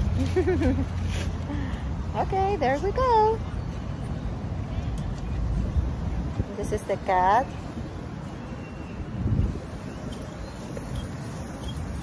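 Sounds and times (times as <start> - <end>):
wind buffeting microphone: 2.2 - 12.0.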